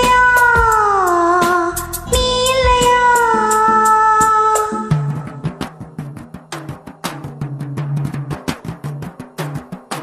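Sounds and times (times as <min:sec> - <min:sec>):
karaoke backing track with drums: 0:00.0 - 0:10.0.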